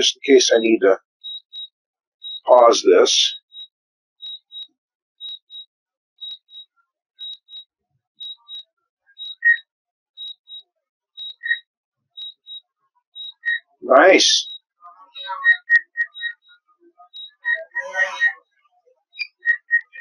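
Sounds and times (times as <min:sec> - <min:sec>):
high double beep: 0:17.2 - 0:18.4
lower single beep: 0:17.2 - 0:18.4.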